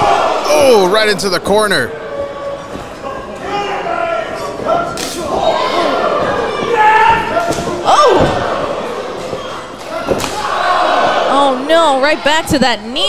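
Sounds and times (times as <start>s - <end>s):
people shouting: 0.0s - 0.9s, 2.1s - 11.7s.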